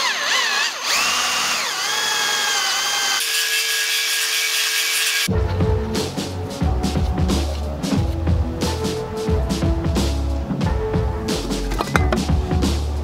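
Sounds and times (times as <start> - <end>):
cordless drill whine: 0.0 - 3.9
music: 5.3 - 13.0.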